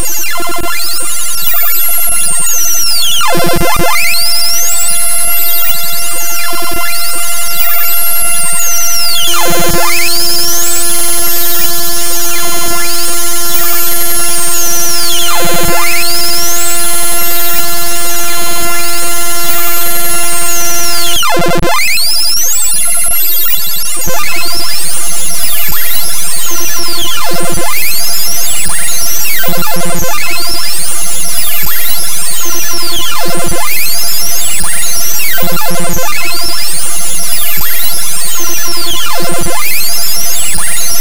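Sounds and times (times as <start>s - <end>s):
harsh eight-bit digital music: 0.0s - 41.0s.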